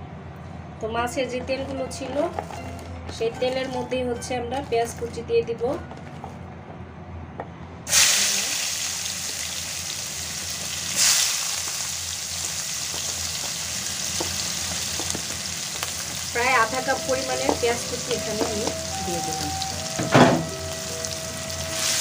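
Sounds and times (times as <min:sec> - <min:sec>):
onion sizzling in hot oil: 0:07.9 - 0:22.0.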